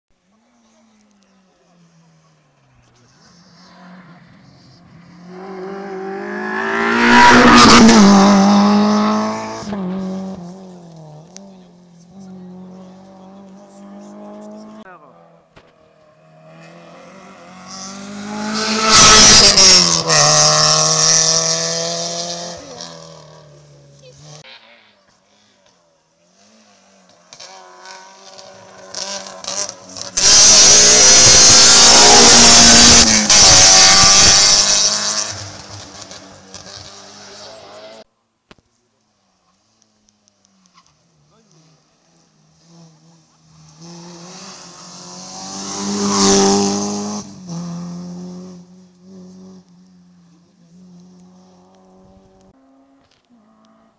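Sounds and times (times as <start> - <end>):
rally cars racing past: 0.4 - 38.1, 39.4 - 53.9.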